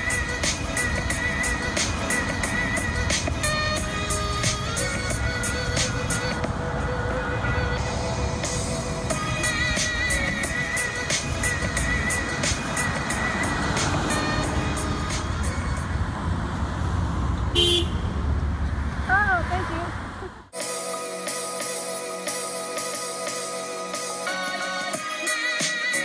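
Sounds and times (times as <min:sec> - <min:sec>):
background music with steady beat: 0:00.0 - 0:16.0, 0:20.5 - 0:26.0.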